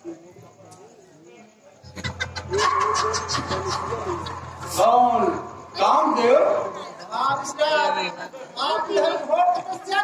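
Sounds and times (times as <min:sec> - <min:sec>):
loud wavering vocal sound: 0:01.9 - 0:07.0
person's voice over loudspeakers: 0:02.6 - 0:07.9.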